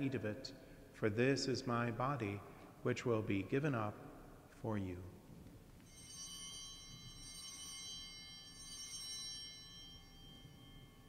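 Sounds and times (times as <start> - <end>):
altar bells ringing: 5.8 - 11.0.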